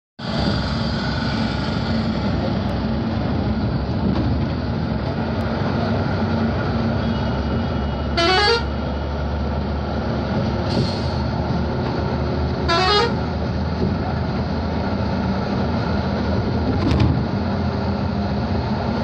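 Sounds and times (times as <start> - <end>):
bus engine and road noise: 0.2 - 19.0
rising toot: 8.1 - 8.7.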